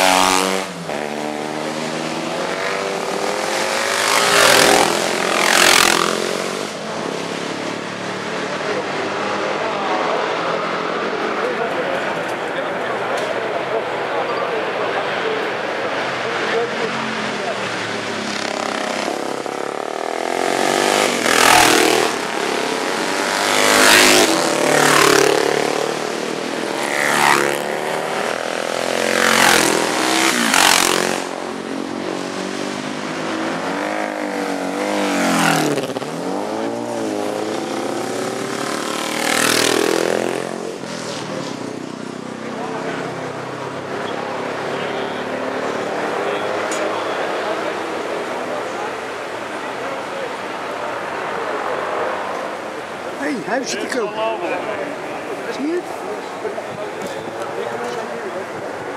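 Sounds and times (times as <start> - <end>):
racing engines passing by: 0.0 - 58.9.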